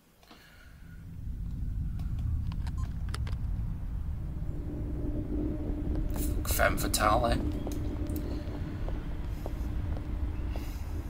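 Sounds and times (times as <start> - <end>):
deep low rumble: 0.4 - 11.0
low steady tone: 0.4 - 11.0.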